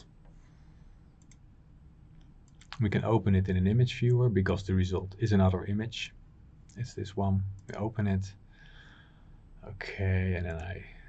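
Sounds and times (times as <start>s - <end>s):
faint computer mouse clicks: 1.2s - 1.5s.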